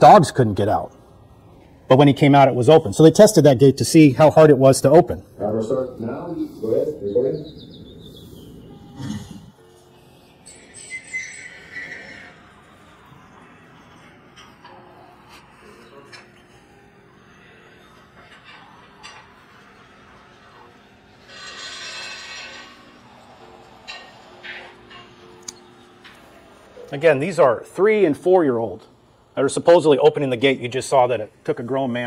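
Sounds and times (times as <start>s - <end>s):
metal gate scraping open: 8.8s - 16.4s, 17.4s - 27.5s.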